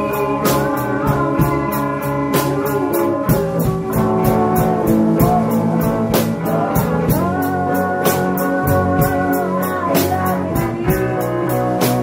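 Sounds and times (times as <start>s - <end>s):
band playing rock music: 0.0s - 12.0s
electric guitar chords: 0.0s - 12.0s.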